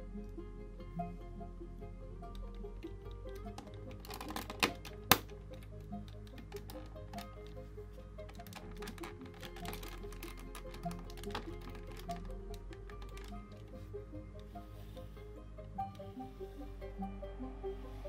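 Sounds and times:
background music: 0.0 - 18.0
plastic toy bricks clicking: 2.3 - 7.6, 8.2 - 13.8.

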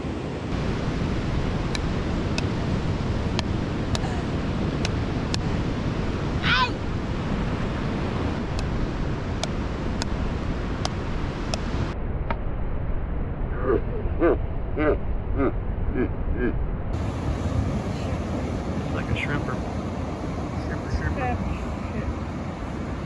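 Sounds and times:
wind noise on microphone: 0.0 - 23.0
person shouting: 6.4 - 6.8
surf: 17.0 - 23.0.

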